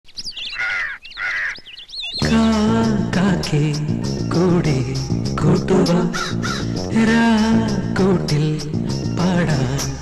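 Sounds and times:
small birds chirping: 0:00.1 - 0:03.1
crow cawing: 0:00.5 - 0:01.7, 0:06.1 - 0:06.8.

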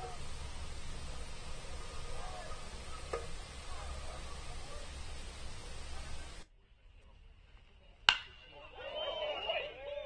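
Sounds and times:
faint distant calls: 0:00.0 - 0:06.4.

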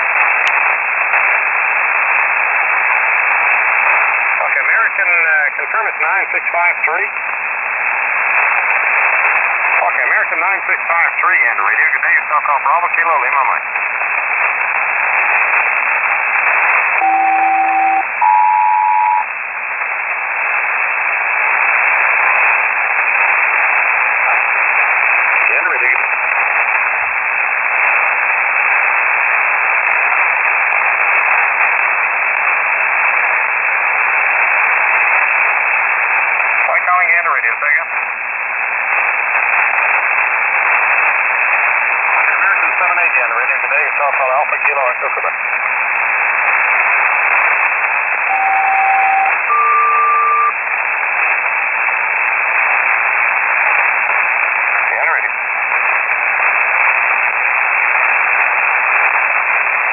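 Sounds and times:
faint garbled radio voices: 0:00.0 - 0:59.9
shortwave radio static hiss: 0:00.0 - 0:59.9
two steady tones together: 0:17.0 - 0:19.2, 0:48.3 - 0:50.6.

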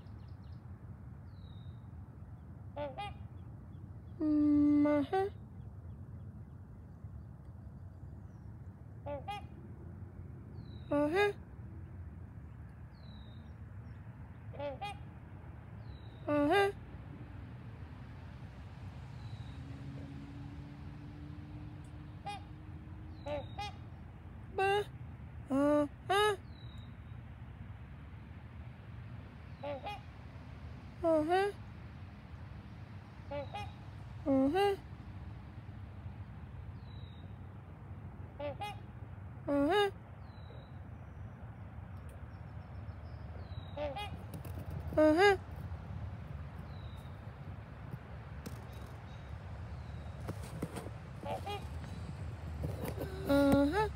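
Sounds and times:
swans honking: 0:02.8 - 0:03.3, 0:09.0 - 0:09.6, 0:22.1 - 0:23.9, 0:43.7 - 0:45.6, 0:50.2 - 0:53.9.

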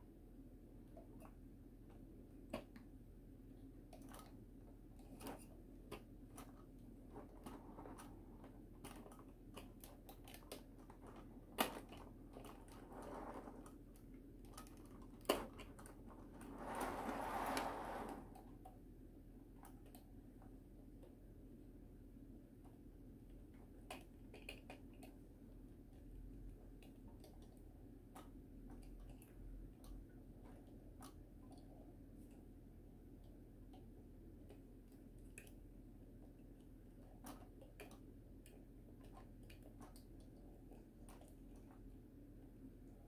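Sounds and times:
low room hum: 0:00.0 - 0:43.0
plastic rubbing and scraping: 0:05.0 - 0:18.6
faint plastic clicks: 0:22.6 - 0:42.0.

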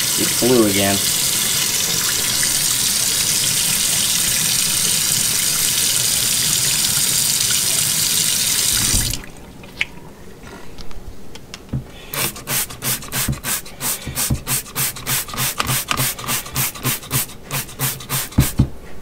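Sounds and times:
faucet water running into sink: 0:00.0 - 0:09.4.

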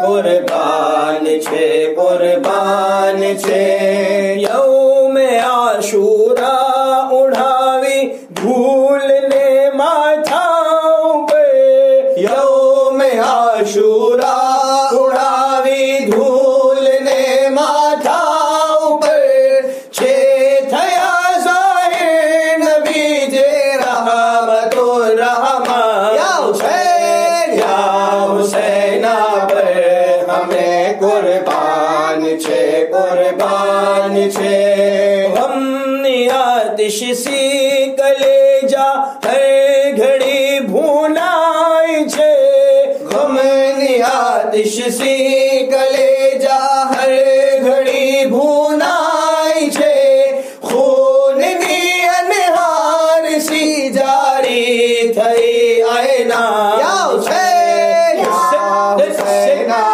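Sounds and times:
unaccompanied devotional chanting: 0:00.0 - 0:59.9.

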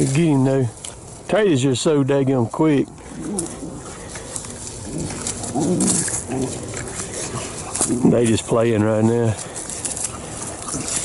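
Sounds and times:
rustling in grass: 0:00.0 - 0:11.0
dogs growling: 0:02.9 - 0:08.5, 0:09.4 - 0:11.0.

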